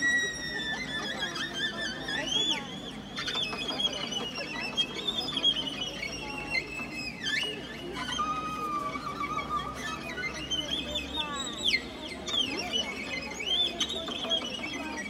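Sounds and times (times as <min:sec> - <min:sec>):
folk instrumental ensemble: 0:00.0 - 0:15.0.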